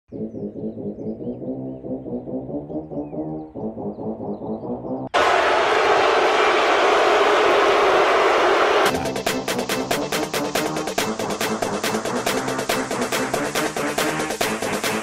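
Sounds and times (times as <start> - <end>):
pulsing low synth: 0.1 - 5.1
fast beat with sharp ticks: 8.8 - 15.0.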